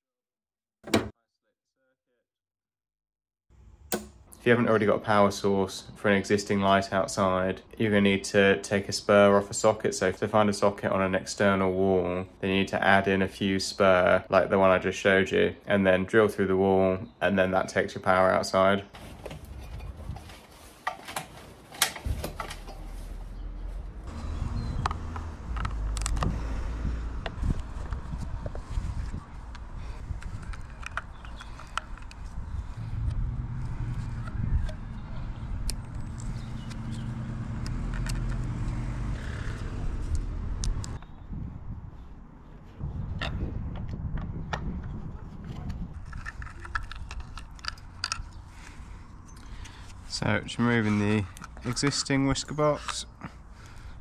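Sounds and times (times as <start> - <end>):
low rumble: 32.0 - 46.1.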